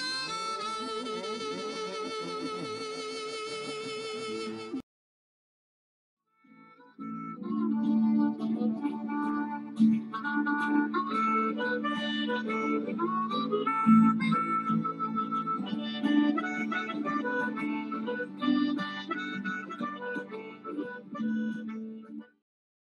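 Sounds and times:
blues harmonica lead: 0.0 - 4.8, 6.5 - 22.4.

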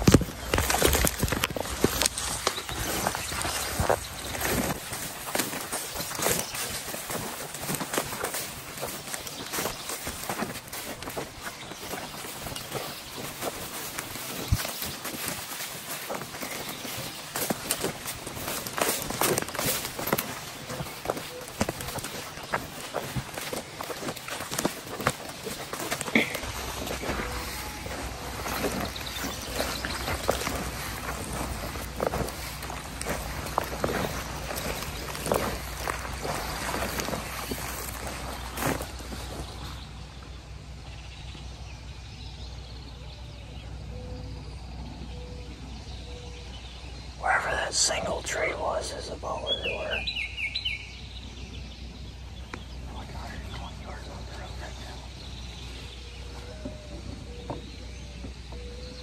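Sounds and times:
footsteps through dry grass: 0.0 - 42.1, 46.8 - 59.0.

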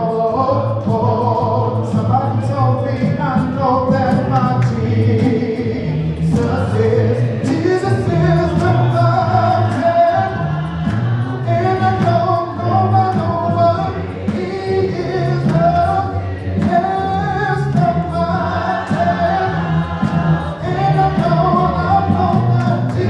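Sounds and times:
man singing into a microphone: 0.0 - 23.0
unaccompanied gospel choir singing: 0.0 - 23.0.

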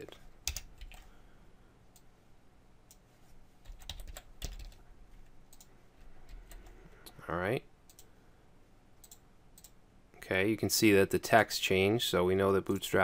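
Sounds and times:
keyboard typing: 0.4 - 1.1, 3.6 - 4.8, 5.5 - 6.8, 9.0 - 9.8.

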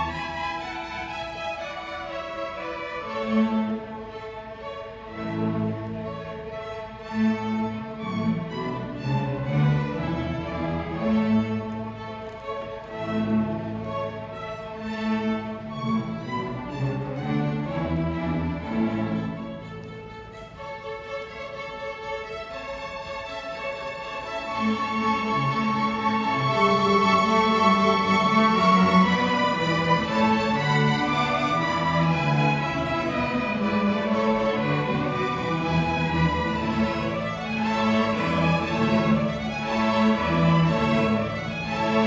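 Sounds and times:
string orchestra playing: 0.0 - 42.0.

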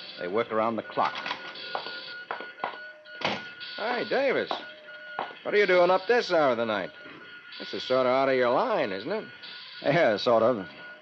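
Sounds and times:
high electronic tone: 0.0 - 11.0.

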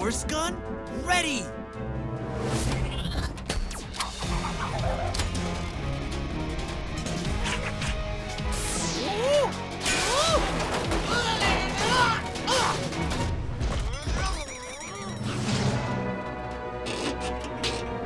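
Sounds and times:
action music: 0.0 - 18.0.

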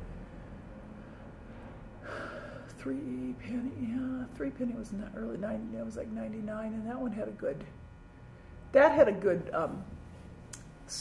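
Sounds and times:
faint room hiss: 0.0 - 11.0
woman breathing in: 1.0 - 2.8.

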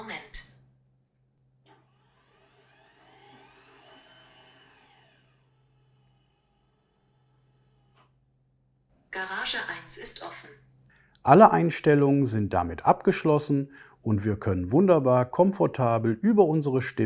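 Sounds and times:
garage door motor whine: 1.5 - 8.2.

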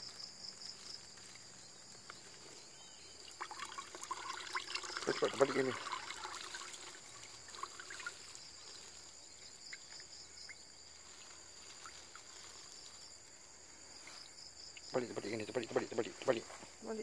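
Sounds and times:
insects chirring: 0.0 - 17.0
faint water drips: 2.8 - 13.0.

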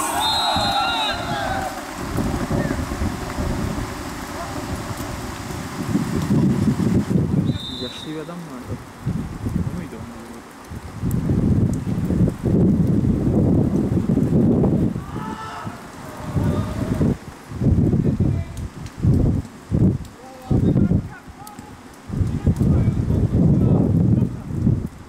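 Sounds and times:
person shouting: 0.0 - 1.8, 15.0 - 17.0
wind buffeting microphone: 0.0 - 25.0.

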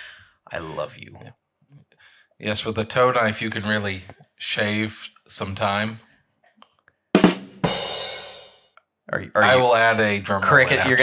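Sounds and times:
drum hits: 7.2 - 8.5.

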